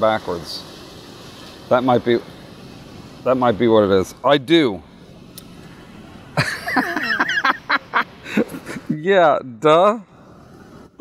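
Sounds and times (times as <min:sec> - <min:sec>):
man chuckling: 0:06.4 - 0:09.0.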